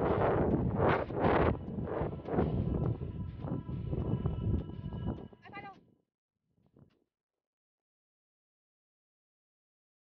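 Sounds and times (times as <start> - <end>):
wind buffeting microphone: 0.0 - 5.7.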